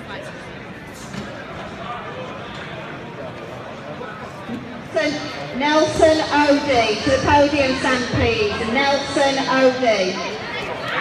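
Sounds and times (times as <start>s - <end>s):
babble of many voices: 0.0s - 11.0s.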